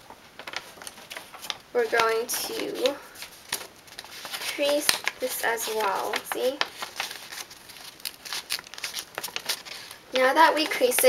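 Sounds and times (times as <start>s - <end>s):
paper rustling and crackling: 0.0s - 11.0s.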